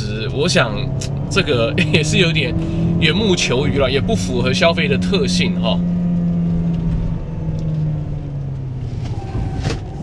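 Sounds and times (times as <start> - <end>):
car engine droning: 0.0 - 10.0
road and tyre rumble: 0.0 - 10.0.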